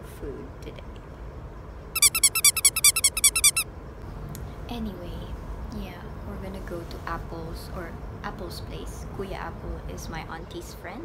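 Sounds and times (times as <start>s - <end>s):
rapid high bird-like chirps: 2.0s - 3.6s.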